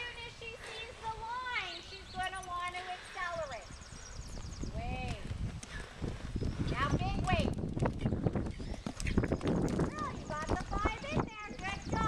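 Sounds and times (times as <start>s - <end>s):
hoofbeats on sand: 4.4s - 12.0s.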